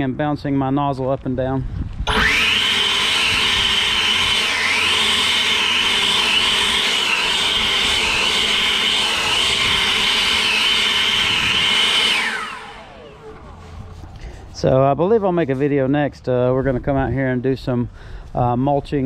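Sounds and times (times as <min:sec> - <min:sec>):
leaf blower running: 0:02.1 - 0:14.7.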